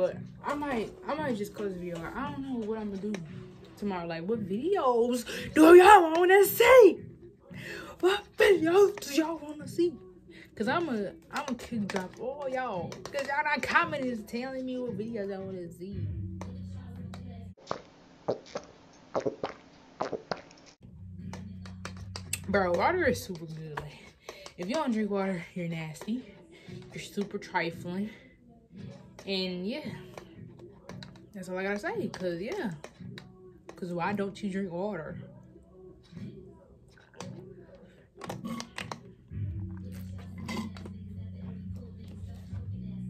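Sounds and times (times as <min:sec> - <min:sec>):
low background music tone: 0:00.0 - 0:17.6, 0:20.8 - 0:43.0
person gulping water: 0:17.7 - 0:20.5.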